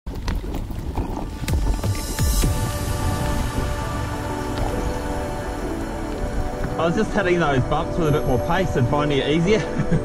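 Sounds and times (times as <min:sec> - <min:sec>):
electronic music: 0:01.4 - 0:09.5.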